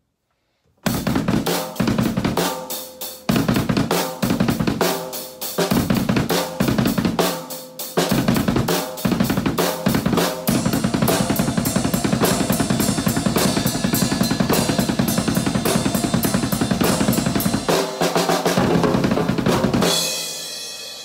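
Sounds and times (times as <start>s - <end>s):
fast kick drum strokes: 0.9s - 7.4s, 8.0s - 20.6s
cymbals: 10.5s - 18.8s.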